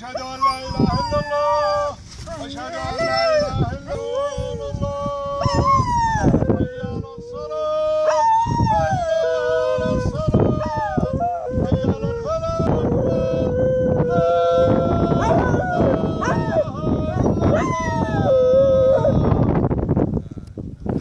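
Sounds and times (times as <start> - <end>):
man chanting call to prayer: 0.0 - 20.3
dog howling: 0.1 - 7.0, 7.8 - 19.5.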